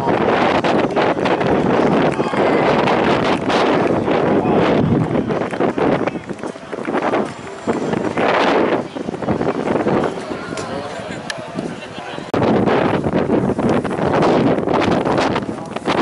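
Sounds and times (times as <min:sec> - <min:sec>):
indistinct voices: 0:00.0 - 0:13.0
wind buffeting microphone: 0:00.0 - 0:16.0.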